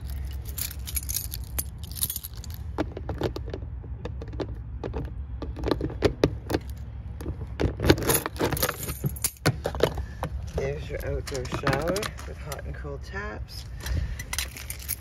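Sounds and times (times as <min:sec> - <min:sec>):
keys jangling: 0:00.0 - 0:02.6, 0:07.8 - 0:10.0, 0:14.2 - 0:15.0.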